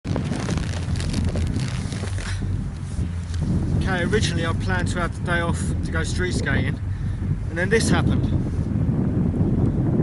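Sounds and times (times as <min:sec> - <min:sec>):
snow crunching: 0:00.0 - 0:04.6
wind buffeting microphone: 0:00.0 - 0:10.0.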